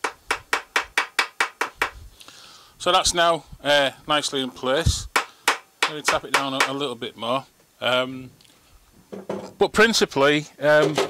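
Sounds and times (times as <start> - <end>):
hammer tapping on metal: 5.1 - 6.8.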